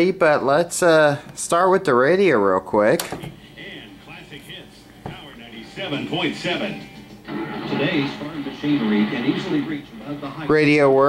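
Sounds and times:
radio voices and music: 3.2s - 11.0s.

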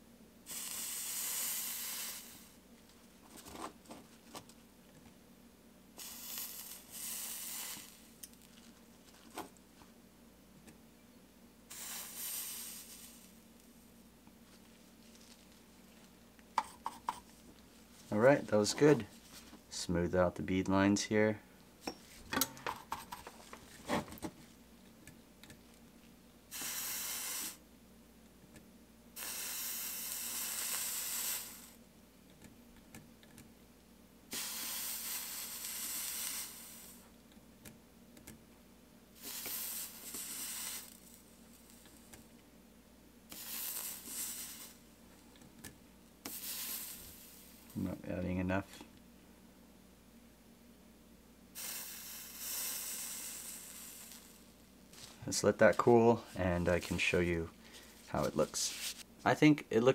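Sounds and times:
soldering iron sizzling: 0.4s - 4.6s, 5.9s - 9.9s, 11.7s - 19.2s, 25.0s - 27.7s, 28.6s - 31.9s, 34.3s - 37.2s, 39.1s - 42.4s, 43.2s - 48.8s, 51.5s - 59.1s.

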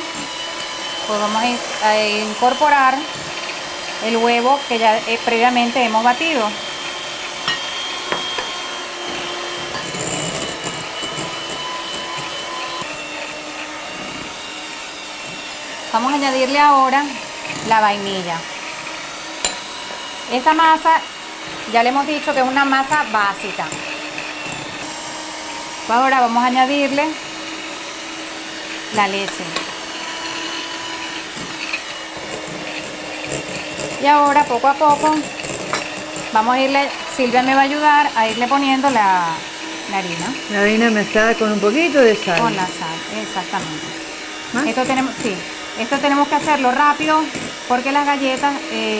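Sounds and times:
electric hand mixer whining: 0.0s - 48.9s.

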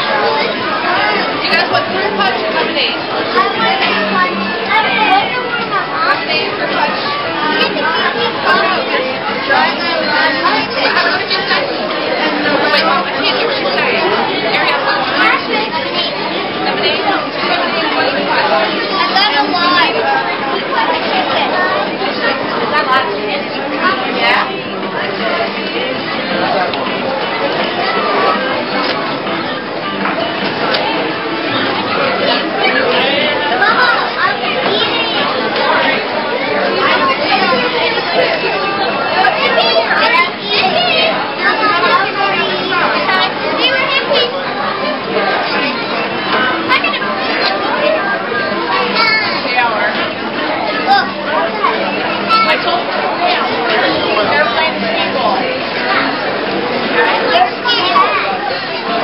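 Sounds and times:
children talking: 0.0s - 59.0s
crowd chatter: 0.0s - 59.0s.

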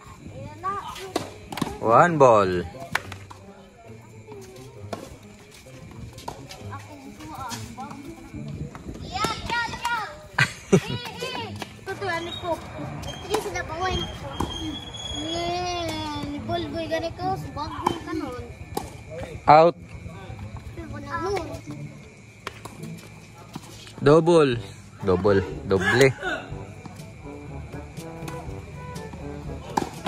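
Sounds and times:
children chattering and calling out: 0.0s - 1.8s, 2.6s - 19.0s, 20.0s - 22.3s
tennis balls struck by rackets: 0.9s - 2.0s, 2.8s - 3.4s, 4.8s - 5.2s, 5.8s - 6.6s, 11.0s - 14.7s, 17.7s - 19.2s, 21.2s - 23.8s, 27.9s - 30.0s.

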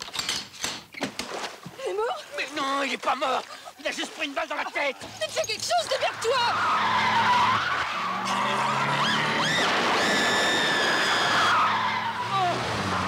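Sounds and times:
car tyres screeching: 5.9s - 13.0s.

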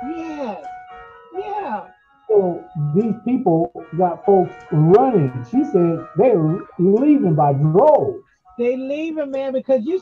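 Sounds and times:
person speaking: 0.0s - 0.7s, 1.3s - 10.0s
soft background music: 0.0s - 10.0s.

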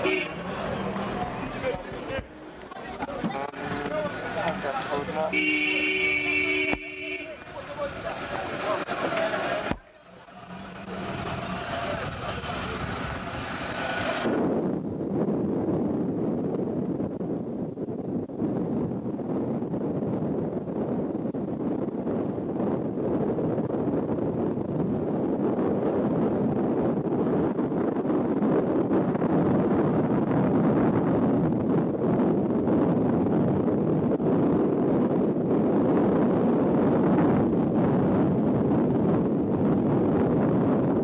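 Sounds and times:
road vehicle engine rumble: 0.0s - 41.0s
wind on microphone: 0.0s - 41.0s.

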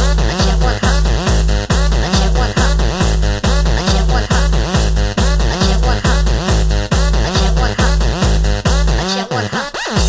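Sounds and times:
heavy kick drum: 0.0s - 9.0s
electronic dance music: 0.0s - 10.0s.

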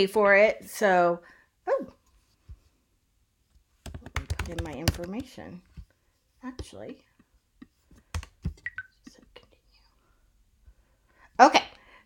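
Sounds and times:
faint keyboard clicks: 3.8s - 5.5s, 8.0s - 9.2s.

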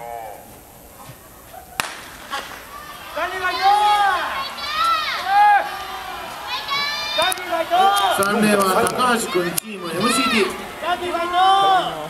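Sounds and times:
starter's pistol crack: 1.8s - 2.6s.

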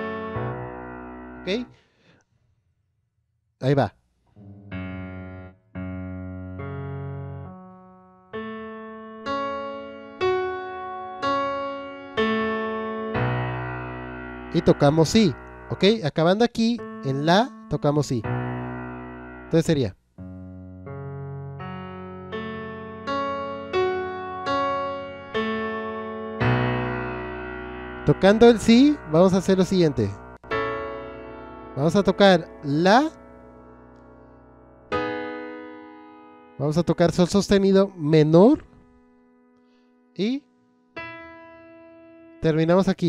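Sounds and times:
slow piano notes and chords: 0.0s - 1.8s, 4.4s - 16.0s, 16.7s - 43.0s.

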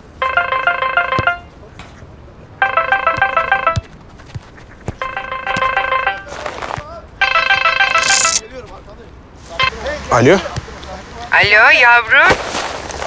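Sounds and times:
mobile phone ringtone: 0.2s - 1.5s, 2.6s - 3.9s, 5.0s - 6.4s, 7.2s - 8.4s.

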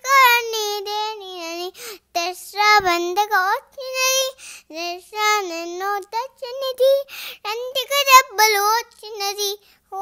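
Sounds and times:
girl singing unaccompanied: 0.0s - 10.0s.

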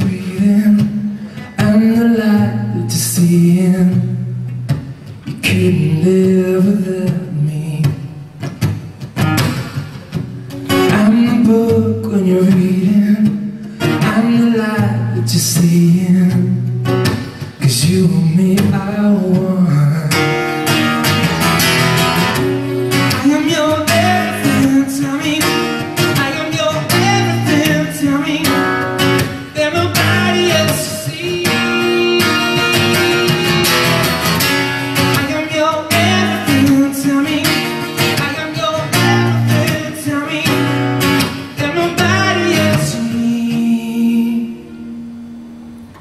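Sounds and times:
man singing: 0.0s - 4.6s, 5.2s - 8.3s, 10.7s - 20.8s, 22.8s - 44.9s
strummed acoustic guitar: 0.0s - 46.0s.

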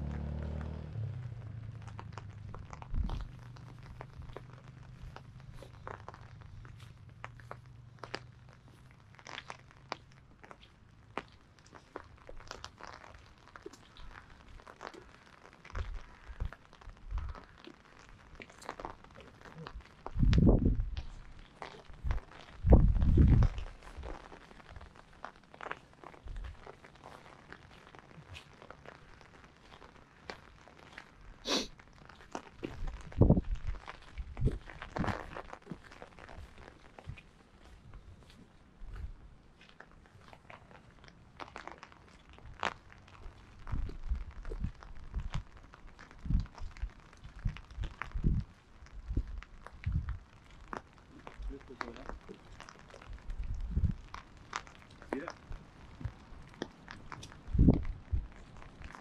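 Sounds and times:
loud low rumbles: 0.0s - 8.2s
footsteps crunching on wet track: 0.0s - 59.0s.

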